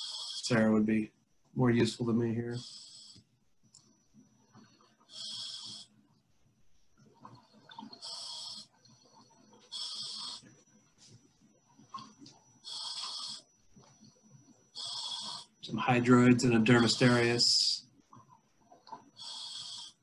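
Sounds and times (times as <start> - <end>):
hissing regulator breaths: 0.0 - 0.8, 2.5 - 3.3, 4.4 - 6.1, 7.4 - 11.2, 12.5 - 15.7, 16.4 - 17.8, 19.0 - 20.0
bubbles crackling: 7.0 - 8.1.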